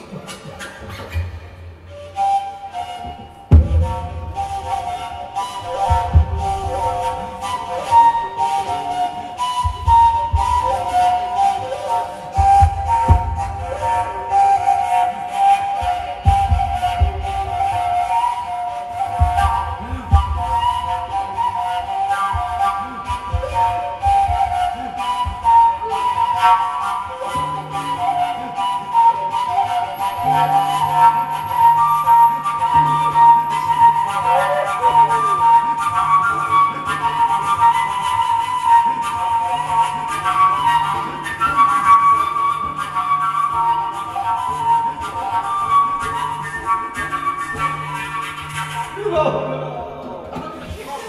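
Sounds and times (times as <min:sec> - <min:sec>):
flute-like wind instrument melody: 0:00.0 - 0:51.0.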